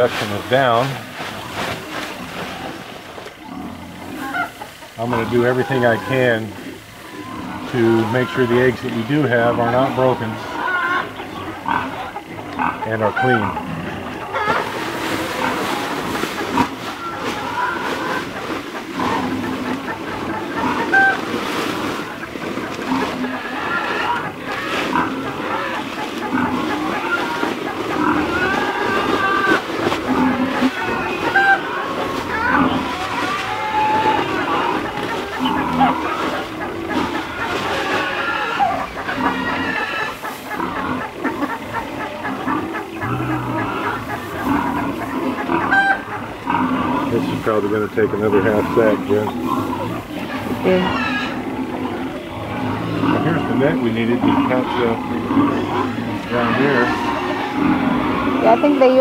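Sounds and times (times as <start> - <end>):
hens clucking: 0.0 - 59.0.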